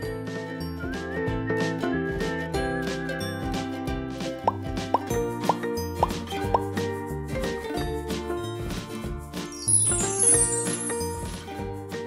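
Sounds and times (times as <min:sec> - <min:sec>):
cheerful background music: 0:00.0 - 0:12.0
cartoon plop sound effect: 0:04.4 - 0:06.7.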